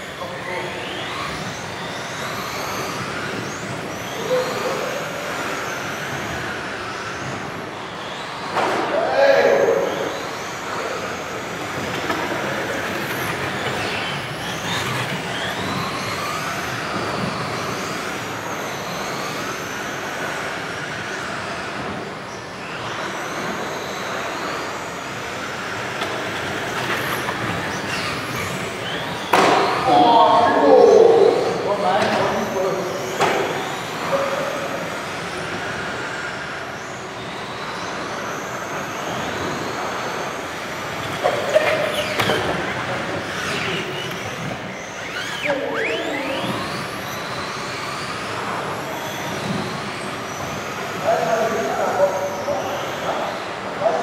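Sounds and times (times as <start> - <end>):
model car motors whining: 0.0 - 54.0
voices: 3.3 - 5.7, 8.6 - 15.8, 28.4 - 35.3, 41.2 - 47.2, 50.8 - 54.0.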